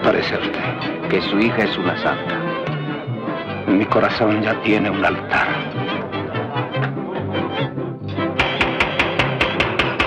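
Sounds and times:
brass band playing: 0.5s - 9.8s
quick percussion hits: 8.4s - 10.0s.

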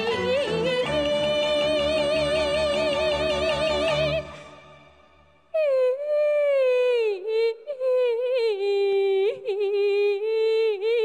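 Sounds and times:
woman singing opera: 0.0s - 4.7s, 5.5s - 11.0s
instrumental accompaniment: 0.0s - 5.4s.

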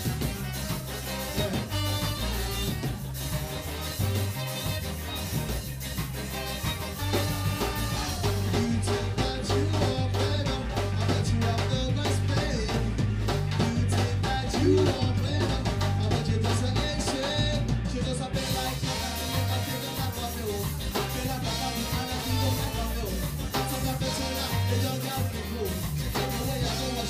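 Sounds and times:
person singing: 0.0s - 27.0s
ska band playing live: 0.0s - 27.0s.

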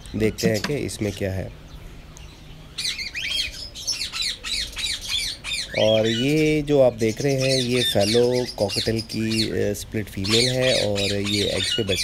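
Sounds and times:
cockatiels squawking: 10.2s - 12.0s.

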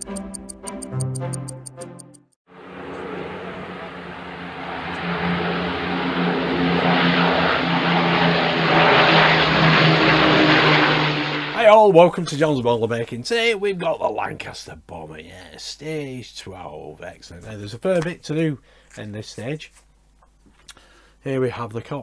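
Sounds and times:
propeller plane droning overhead: 2.5s - 12.2s.

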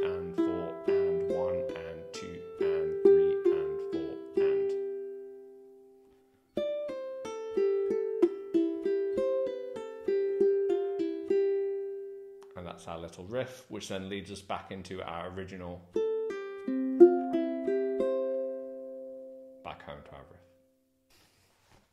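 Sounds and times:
ukulele plucked notes: 0.0s - 5.9s, 6.6s - 12.6s, 15.2s - 19.7s.

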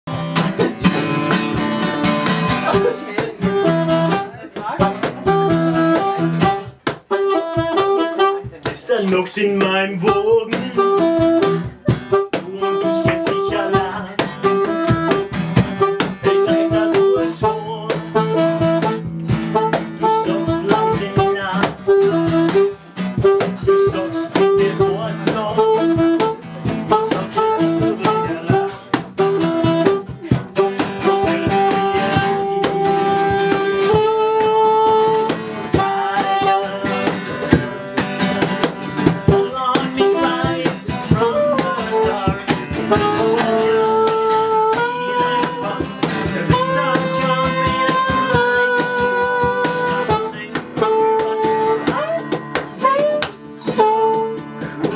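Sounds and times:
saxophone melody: 0.1s - 8.7s, 9.5s - 54.9s
strummed acoustic guitar: 0.1s - 54.9s.

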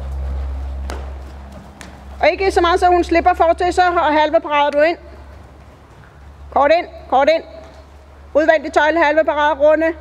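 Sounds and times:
horse hoofbeats on sand: 0.0s - 8.2s
low steady rumble: 0.0s - 10.0s.

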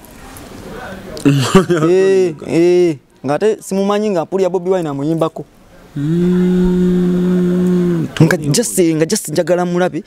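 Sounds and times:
man talking: 0.9s - 10.0s
man humming a long note: 6.0s - 8.2s.

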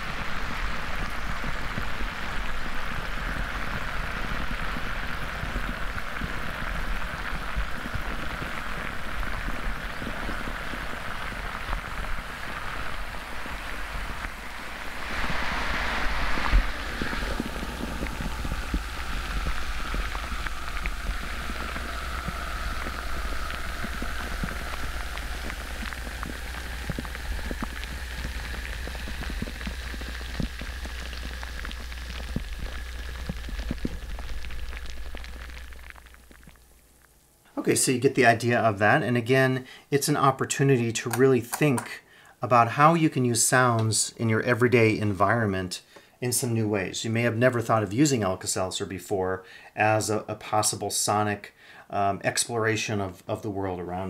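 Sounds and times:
tablet fizzing in water: 0.0s - 36.7s.

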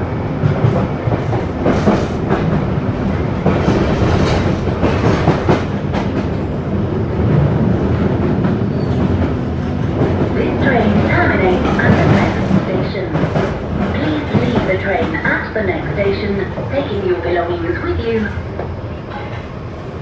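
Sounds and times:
train wheels rumbling: 0.0s - 20.0s.

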